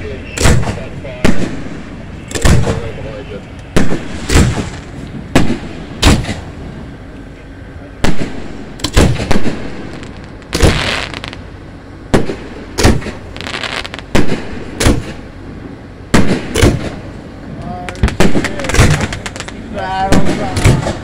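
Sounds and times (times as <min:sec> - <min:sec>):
fireworks bursting with sharp bangs: 0:00.0 - 0:06.6, 0:08.0 - 0:15.3, 0:16.1 - 0:17.1, 0:17.9 - 0:21.0
hissing crackling fireworks: 0:00.0 - 0:21.0.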